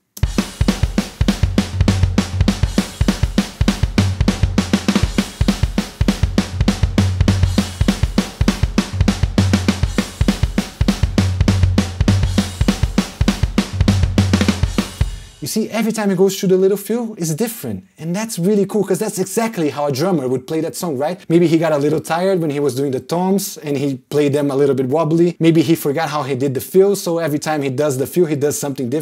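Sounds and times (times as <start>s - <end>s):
rock drum beat: 0.2s - 15.6s.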